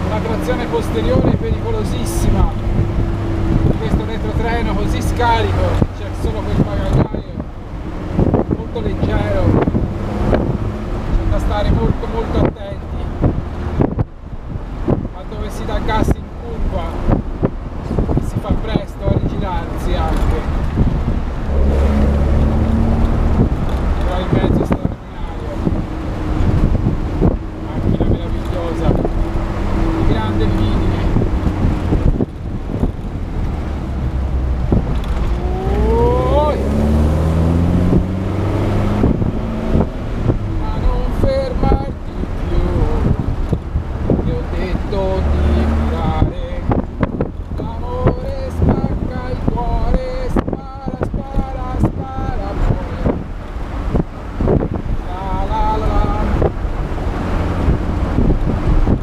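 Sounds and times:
car engine revving: 0.0 - 50.6, 51.2 - 59.0.

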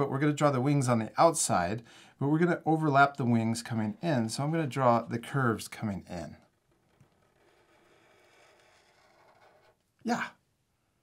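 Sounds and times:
marker drawing on paper: 6.4 - 9.9.

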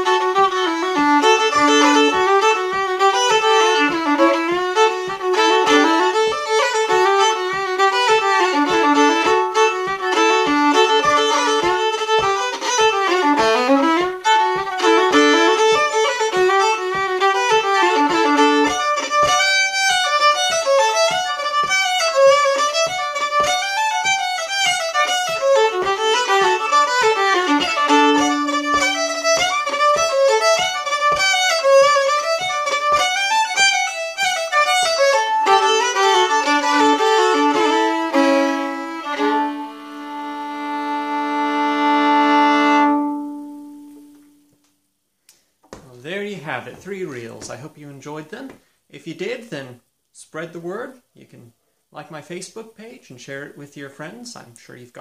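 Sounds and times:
fiddle playing a fast reel: 0.0 - 44.0
soft low thump keeping time: 0.6 - 33.2.

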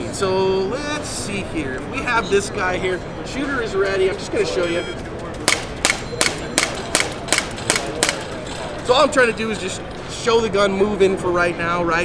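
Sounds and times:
air pistol shots: 5.4 - 8.4.

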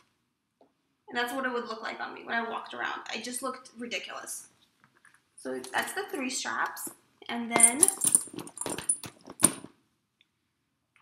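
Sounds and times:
metal clasps clinking: 7.6 - 9.7.

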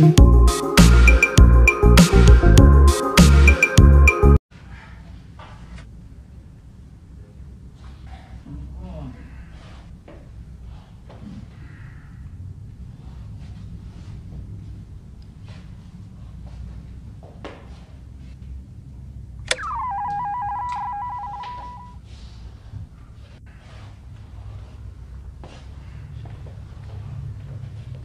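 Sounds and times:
buzzer button click: 19.5 - 21.9
electronic warbling ring: 19.5 - 22.0.

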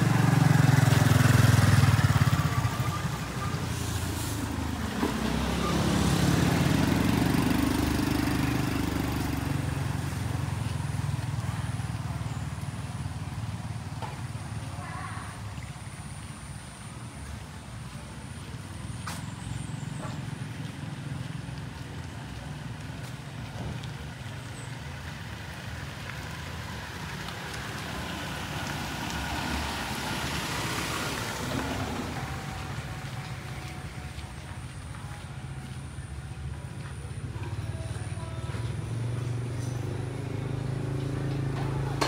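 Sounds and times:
vehicle passing: 0.0 - 15.7, 17.2 - 42.0.

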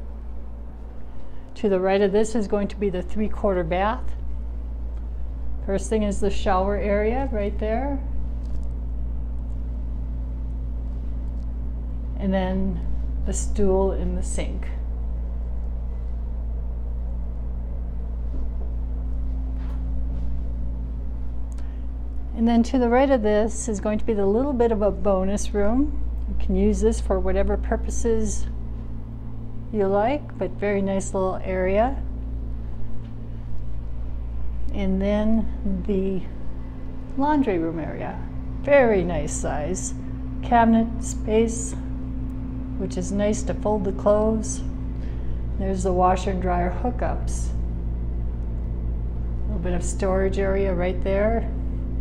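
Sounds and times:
low mechanical hum: 0.0 - 52.0.

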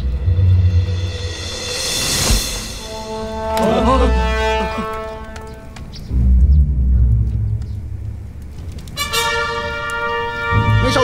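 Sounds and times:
deep drum rumble: 0.0 - 4.6
sustained chord: 0.0 - 5.8.

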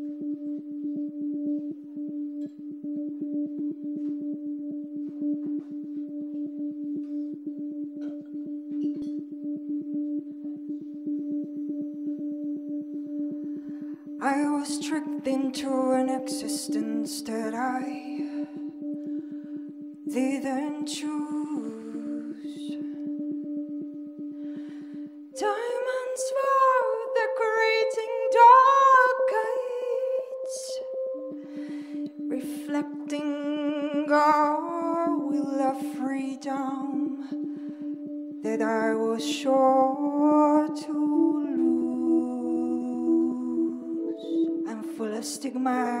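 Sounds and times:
low musical drone: 0.0 - 46.0
pulsing beat: 0.0 - 46.0.

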